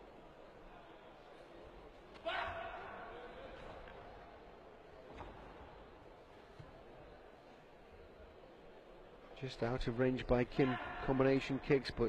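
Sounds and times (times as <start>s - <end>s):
loud shout: 2.2s - 3.1s.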